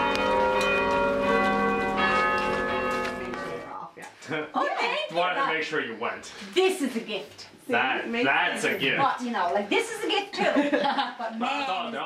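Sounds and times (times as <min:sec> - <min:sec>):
church bells ringing: 0:00.0 - 0:03.7.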